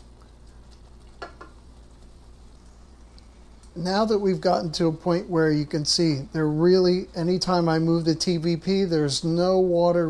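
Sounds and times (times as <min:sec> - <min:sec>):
food sizzling in a skillet: 0:00.0 - 0:04.8.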